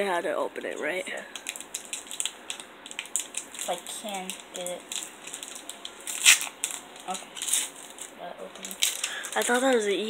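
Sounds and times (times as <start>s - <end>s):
foil wrapper crinkling: 1.1s - 10.0s.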